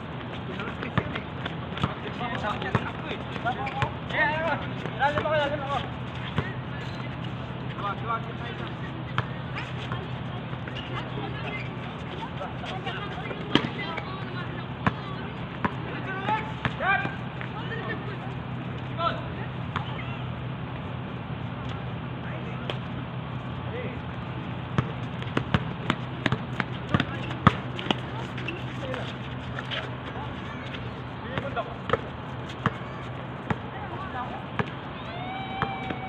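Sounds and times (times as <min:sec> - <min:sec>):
distant voices: 0:00.0 - 0:36.0
basketball bouncing on court: 0:00.2 - 0:04.0, 0:04.6 - 0:05.5, 0:06.2 - 0:06.6, 0:09.1 - 0:11.7, 0:12.9 - 0:17.2, 0:24.7 - 0:29.0, 0:30.7 - 0:33.8, 0:34.5 - 0:34.8
basketball bouncing on hard court: 0:01.8 - 0:04.0, 0:13.2 - 0:13.9, 0:24.8 - 0:29.0, 0:31.3 - 0:33.7, 0:34.6 - 0:34.8.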